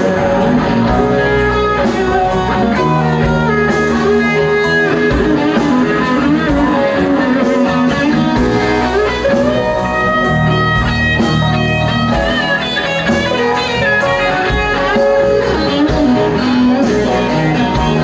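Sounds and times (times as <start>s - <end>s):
bass: 0.0s - 18.0s
electric guitar: 0.0s - 18.0s.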